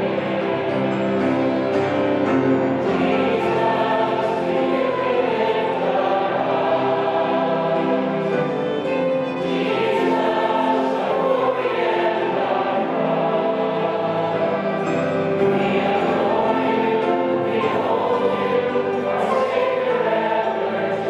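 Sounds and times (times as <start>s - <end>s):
congregation singing a hymn: 0.0s - 21.0s
piano: 0.0s - 21.0s
violin: 0.0s - 21.0s.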